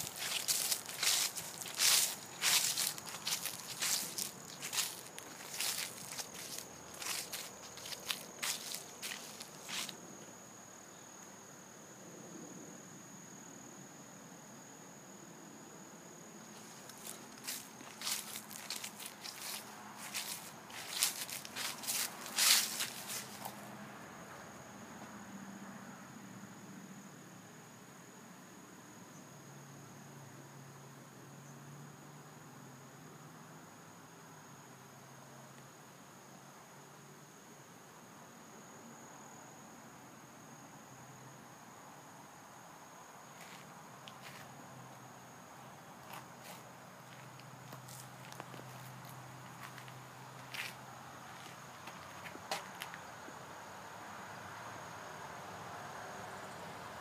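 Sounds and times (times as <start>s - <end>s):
footsteps crunching through dry leaves: 0.0s - 10.0s, 16.5s - 23.7s, 43.4s - 44.5s, 46.0s - 53.0s.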